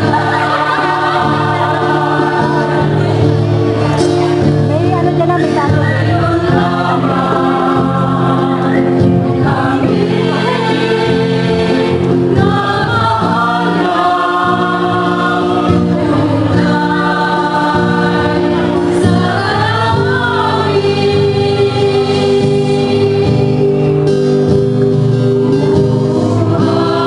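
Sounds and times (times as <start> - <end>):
mixed choir singing: 0.0 - 27.0.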